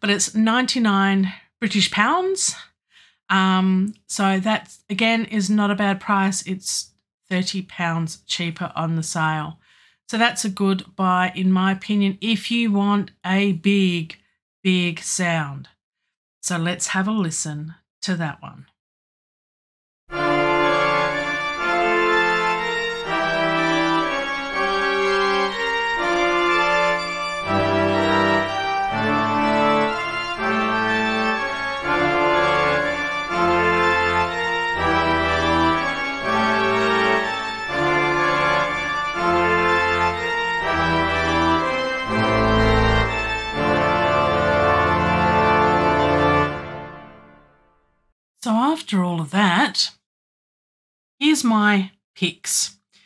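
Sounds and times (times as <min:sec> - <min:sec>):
pipe organ chords: 0:20.1 - 0:47.6.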